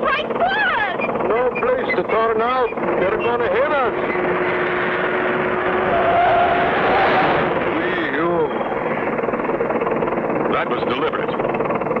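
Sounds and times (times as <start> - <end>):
cartoon vehicle engine noise: 0.0 - 12.0
wavering squeal: 0.8 - 4.5, 5.5 - 9.9
short warbling cry: 5.9 - 9.2.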